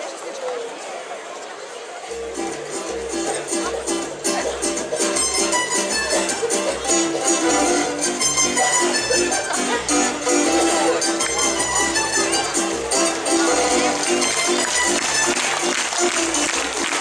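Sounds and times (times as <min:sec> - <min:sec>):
low murmur of voices: 0:00.0 - 0:17.0
pulsing bass: 0:02.1 - 0:17.0
plucked string ensemble folk tune: 0:02.2 - 0:17.0.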